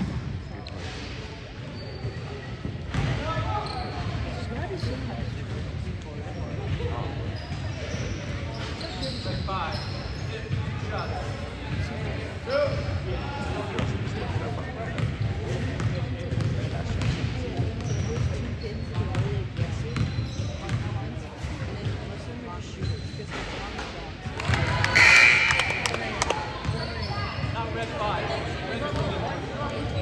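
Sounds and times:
echoing indistinct voices: 23.9s - 30.0s.

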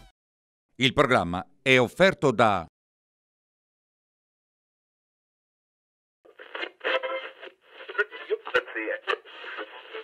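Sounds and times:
sharp radio clicks: 6.3s - 10.0s
voice over radio: 7.7s - 10.0s.

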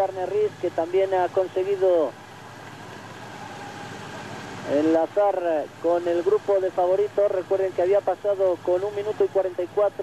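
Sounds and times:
vehicle engine drone and road noise: 0.0s - 10.0s.

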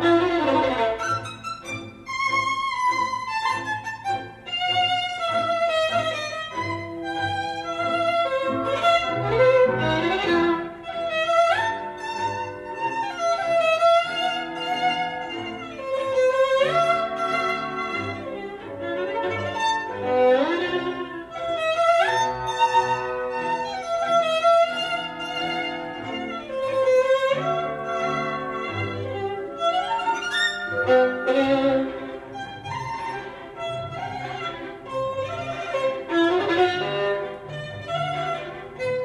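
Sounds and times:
violin melody over loudspeaker: 0.0s - 39.0s
sustained accompanying notes: 27.5s - 35.1s.

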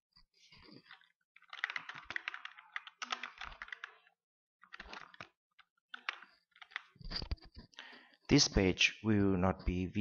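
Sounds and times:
keyboard typing: 0.5s - 7.6s.

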